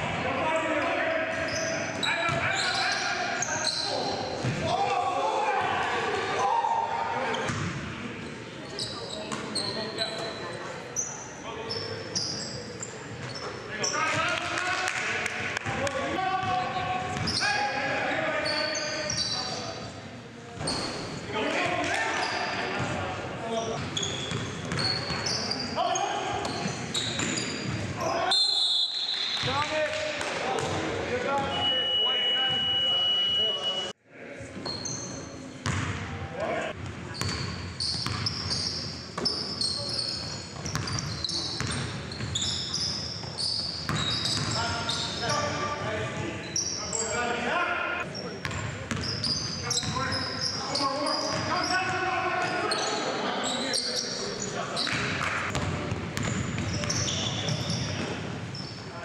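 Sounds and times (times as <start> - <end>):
sneakers squeaking on hardwood: 1.3 - 4.7, 8.7 - 14.2, 16.4 - 17.6, 18.4 - 19.7, 20.6 - 22.9, 23.6 - 28.0, 34.6 - 35.9, 37.1 - 47.1, 48.4 - 58.9
basketball bouncing: 35.6 - 35.9, 37.2 - 38.5, 40.6 - 42.0, 43.9 - 44.6, 48.4 - 49.0, 55.0 - 58.2.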